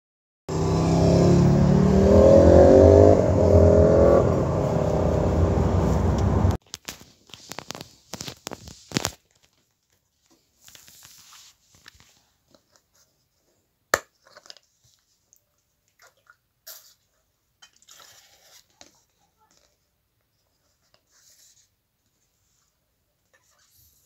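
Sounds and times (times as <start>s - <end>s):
plastic bottle crinkling: 6.6s - 10.0s.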